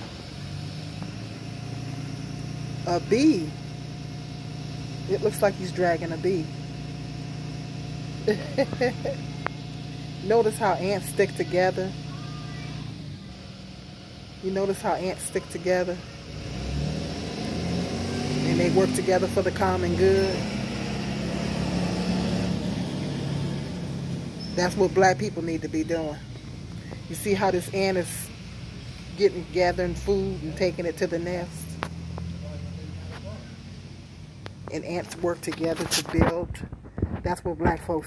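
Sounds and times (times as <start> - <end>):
low engine hum: 0.0 - 38.0.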